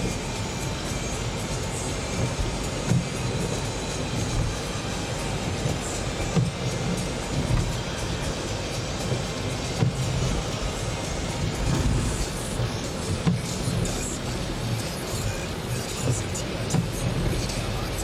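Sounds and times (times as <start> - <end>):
tyre noise on wet road: 0.0 - 18.0
low uneven rumble: 9.9 - 18.0.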